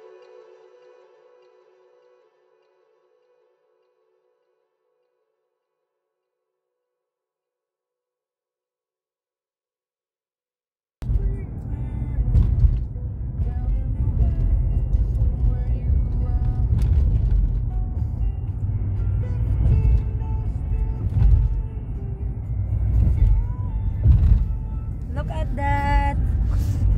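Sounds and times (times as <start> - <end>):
car road rumble inside cabin: 11.0 - 26.9.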